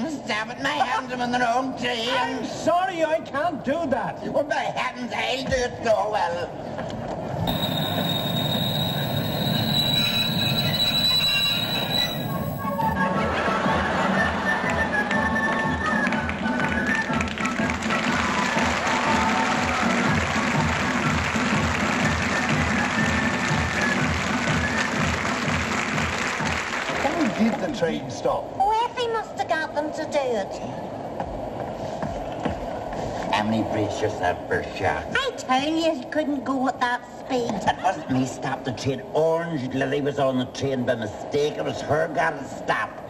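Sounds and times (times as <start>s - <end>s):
steady high whine: 7.5s - 13.0s
background music with beat: 15.6s - 26.7s.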